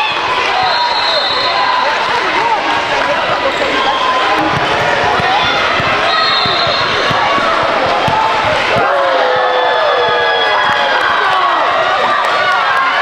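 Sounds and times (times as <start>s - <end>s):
many voices chattering: 0.0s - 13.0s
sneakers squeaking: 3.1s - 10.9s
basketball bouncing on court: 4.3s - 11.3s.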